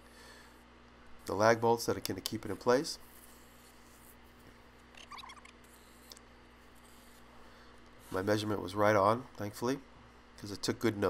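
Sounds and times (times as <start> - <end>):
faint squeaky chirp: 4.9 - 6.0.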